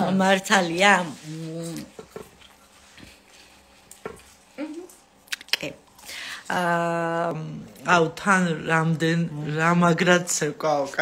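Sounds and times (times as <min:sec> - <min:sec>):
woman humming: 0:04.6 - 0:05.0.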